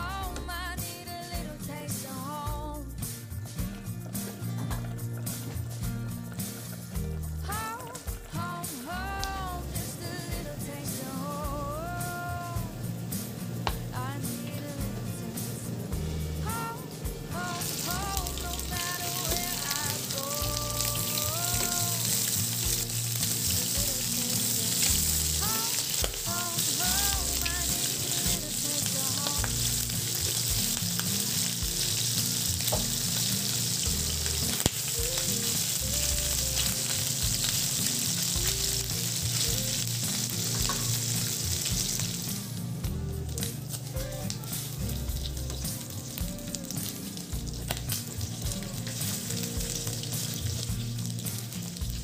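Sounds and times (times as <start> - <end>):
meat sizzling in hot oil: 3.0 - 52.0.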